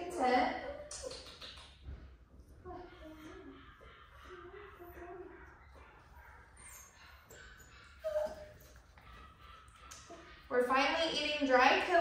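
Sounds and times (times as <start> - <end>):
puppy whimpering: 0.1 - 1.3, 2.6 - 10.3
faint puppy whines: 2.5 - 10.4.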